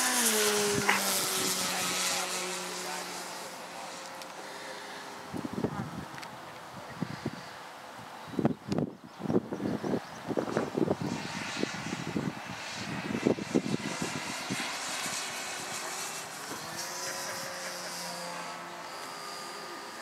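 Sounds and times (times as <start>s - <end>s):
model airplane engine: 0.0s - 20.0s.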